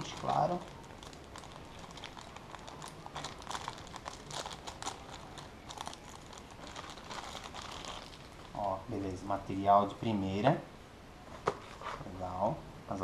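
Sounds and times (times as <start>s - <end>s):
plastic bag crinkling: 0.0s - 8.8s.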